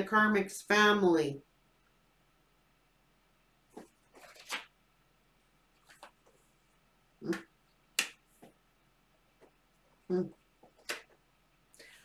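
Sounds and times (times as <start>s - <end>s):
cards rustling: 3.7s - 4.8s, 5.7s - 6.6s
card snapping: 3.8s - 4.7s, 7.3s - 8.2s, 10.7s - 11.2s.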